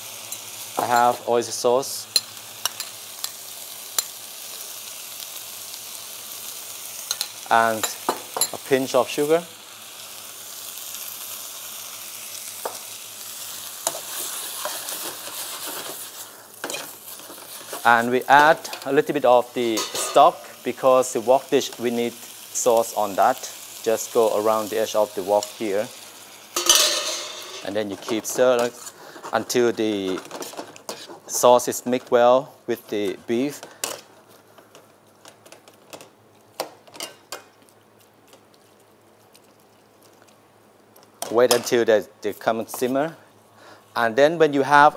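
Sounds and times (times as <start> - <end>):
food sizzling in a wok: 0.0 - 34.2
faint steady hiss: 0.0 - 44.9
metal utensil scraping a wok: 13.9 - 17.9, 30.2 - 31.4.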